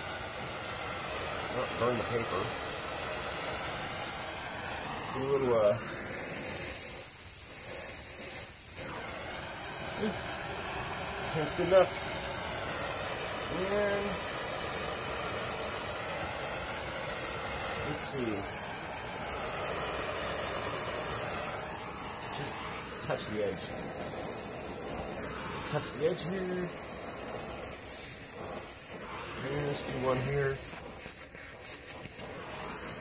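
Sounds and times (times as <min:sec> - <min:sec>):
torch flame hissing: 0:00.0 - 0:33.0.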